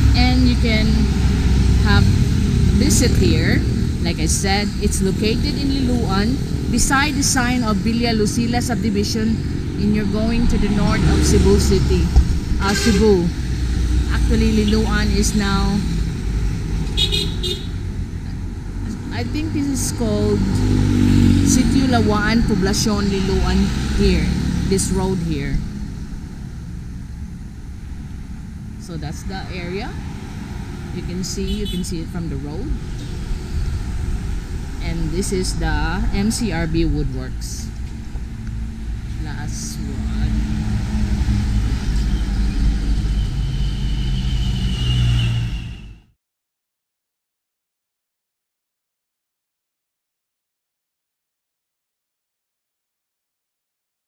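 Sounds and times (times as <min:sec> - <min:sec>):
vehicle engine rumbling and whining: 0:00.0 - 0:46.2
car driving past: 0:19.7 - 0:31.6, 0:37.6 - 0:46.0.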